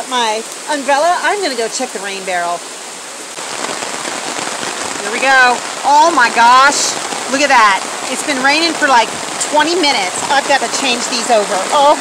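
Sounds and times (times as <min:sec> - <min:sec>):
heavy rain falling: 0:00.0 - 0:12.0
close raindrop hits: 0:03.3 - 0:12.0.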